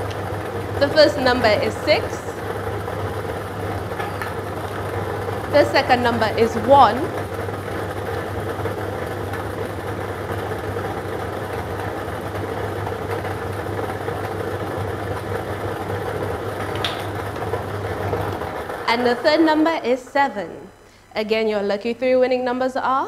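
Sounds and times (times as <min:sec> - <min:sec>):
lottery machine balls tumbling: 0:00.0 - 0:10.9, 0:15.8 - 0:19.9.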